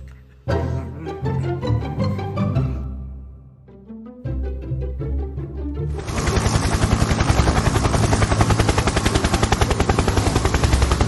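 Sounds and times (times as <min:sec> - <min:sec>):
loud rapid rattle: 0:06.0 - 0:11.0.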